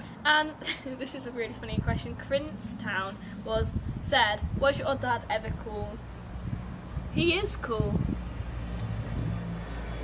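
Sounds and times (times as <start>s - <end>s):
motor vehicle rumbling: 0.0s - 10.0s
faint engine tone: 8.1s - 10.0s.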